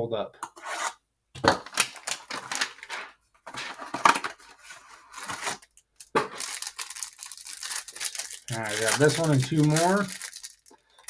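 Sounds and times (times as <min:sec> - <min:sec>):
plastic wrapper crinkling: 0:01.6 - 0:11.0.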